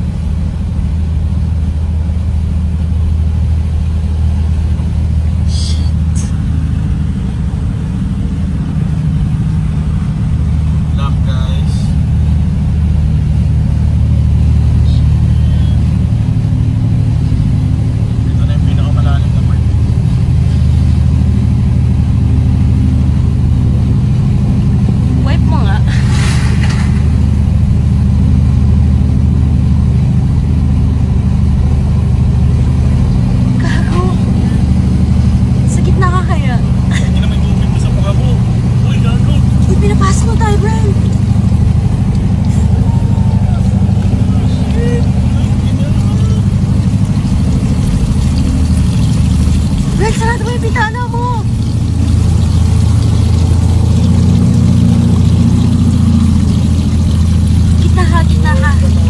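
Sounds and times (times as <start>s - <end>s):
car engine running: 0.0s - 59.0s
vehicle driving through water: 0.0s - 59.0s
rush of noise: 25.2s - 28.0s.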